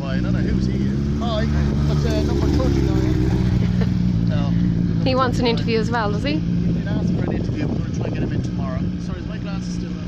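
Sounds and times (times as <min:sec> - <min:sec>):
motorcycle engine passing slowly: 0:00.0 - 0:10.0.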